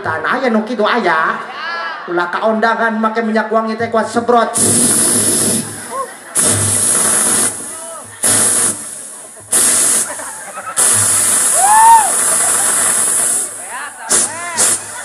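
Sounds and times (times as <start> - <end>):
man hissing into microphone: 4.6 - 15.0.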